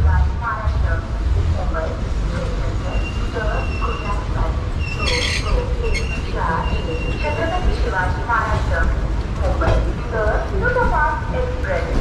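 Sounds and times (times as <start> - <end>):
people talking: 0.0 - 12.0
train coach low rumble: 0.0 - 12.0.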